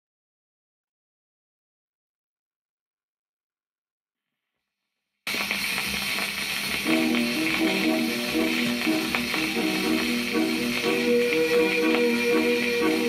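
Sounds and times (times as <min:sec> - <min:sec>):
record surface hiss and crackle: 0:05.3 - 0:13.0
tango music: 0:06.8 - 0:13.0.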